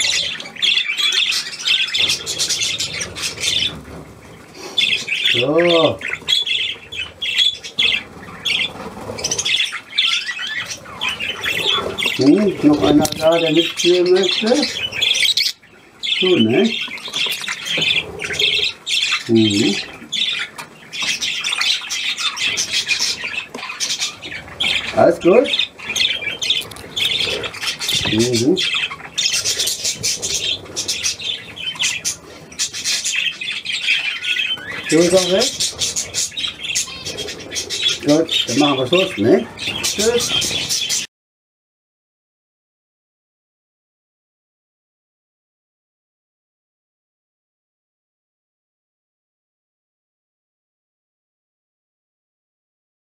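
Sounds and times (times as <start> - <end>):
budgerigars chirping: 0.0 - 41.1.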